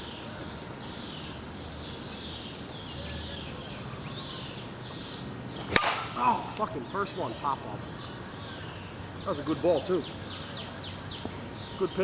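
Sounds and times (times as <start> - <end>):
bat cracking against ball: 5.6 - 6.2.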